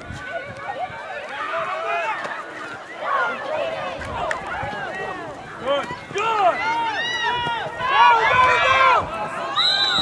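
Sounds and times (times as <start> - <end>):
spectators shouting and cheering: 0.0 - 10.0
referee's whistle: 9.5 - 10.0.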